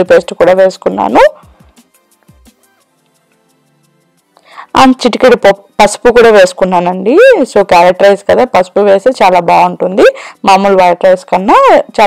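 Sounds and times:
woman's voice: 0.0 - 1.4, 4.6 - 12.0
faint background music: 0.0 - 12.0.

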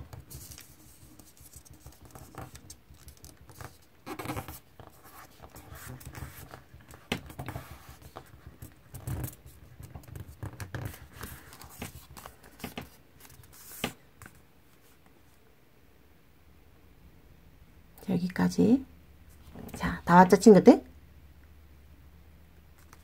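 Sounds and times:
paper rustling while folded: 0.1 - 15.0.

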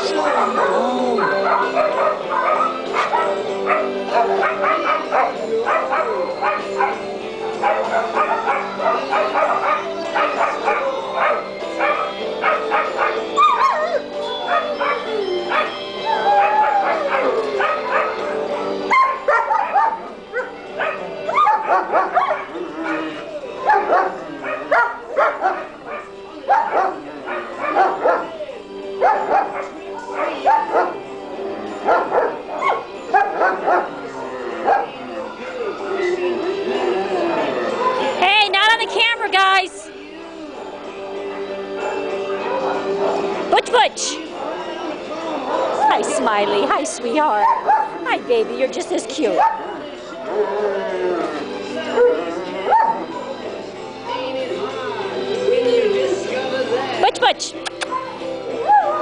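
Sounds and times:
dog whining: 0.0 - 31.0
dogs barking and yipping: 0.0 - 38.2, 39.5 - 55.9, 57.6 - 59.0.

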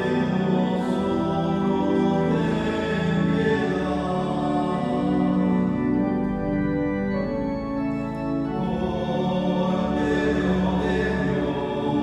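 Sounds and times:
choir singing sacred music: 0.0 - 12.0.

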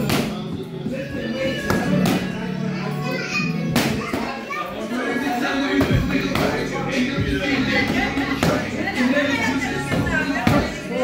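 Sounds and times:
background music: 0.0 - 11.0
indistinct voices and chatter: 0.0 - 11.0.

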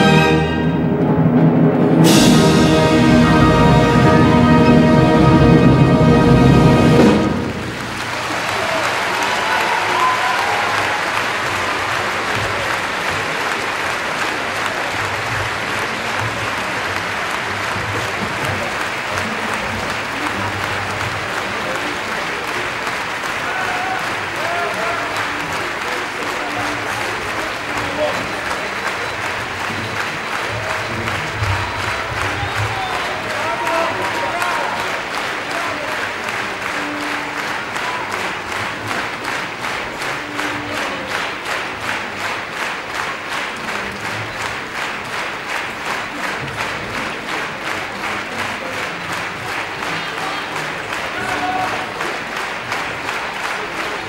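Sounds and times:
orchestra chord: 0.0 - 8.2
audience applauding: 1.8 - 54.0.

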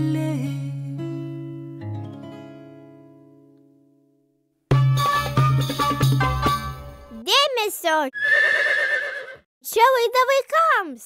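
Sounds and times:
person speaking: 7.1 - 8.1
horse whinnying: 8.2 - 9.4.

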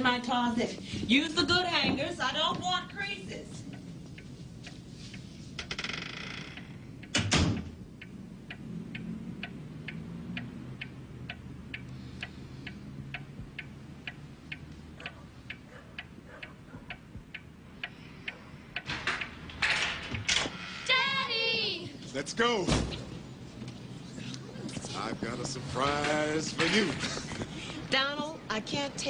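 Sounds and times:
light ticks: 6.5 - 19.3.

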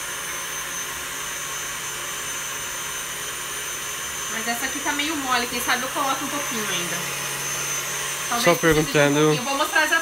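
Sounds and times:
stand mixer running: 0.0 - 10.0.

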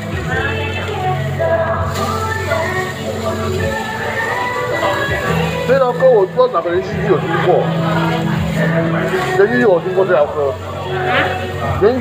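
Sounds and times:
background song: 0.0 - 12.0.

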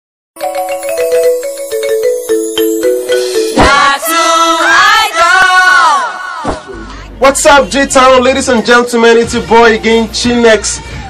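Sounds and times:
fast ticking beat: 0.4 - 4.0
synth jingle melody: 0.4 - 4.5.

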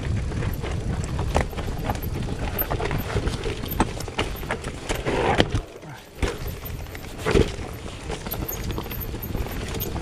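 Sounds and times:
bike tyres knocking over rocks: 0.0 - 10.0
sharp clacks from bike: 0.0 - 10.0.

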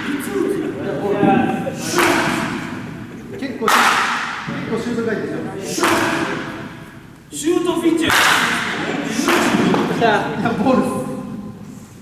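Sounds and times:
sharp smack echoing in hall: 1.8 - 2.9, 3.7 - 4.5, 5.7 - 6.9, 8.0 - 10.0.

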